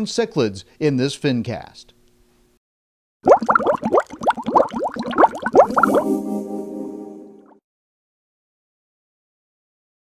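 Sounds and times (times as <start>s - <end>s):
bubbling water bloops: 3.2s - 6.2s.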